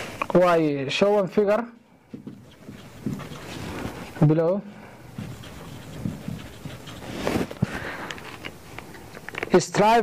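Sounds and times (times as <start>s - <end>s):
marker writing on whiteboard: 2.1s - 4.3s, 4.9s - 7.6s.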